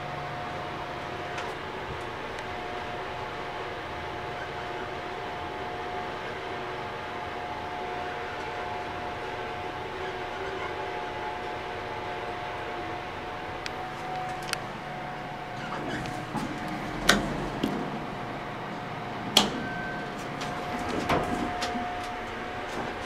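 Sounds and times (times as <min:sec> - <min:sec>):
elevator mechanical hum: 0:00.0 - 0:23.0
faint constant whine: 0:00.0 - 0:23.0.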